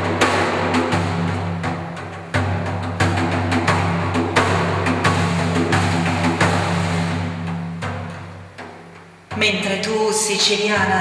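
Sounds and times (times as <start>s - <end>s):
frame drum struck by hand: 0.0s - 9.6s.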